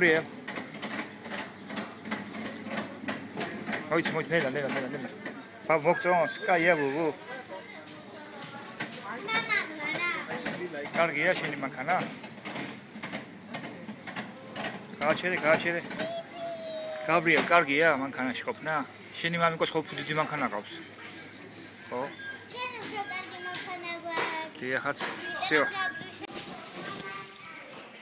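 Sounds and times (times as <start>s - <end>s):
children's voices: 8.3s - 10.6s, 15.8s - 17.5s, 22.4s - 24.6s, 25.2s - 28.0s.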